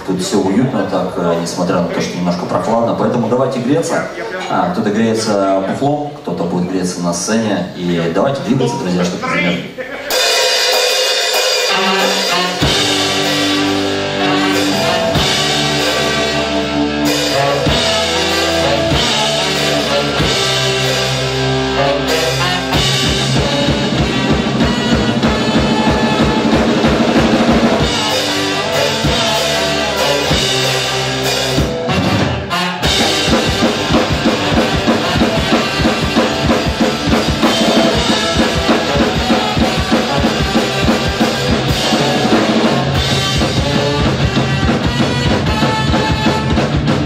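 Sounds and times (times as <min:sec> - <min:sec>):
ska-punk band playing: 0:00.0 - 0:06.2, 0:06.9 - 0:47.0
fast steady drum beat: 0:08.6 - 0:47.0.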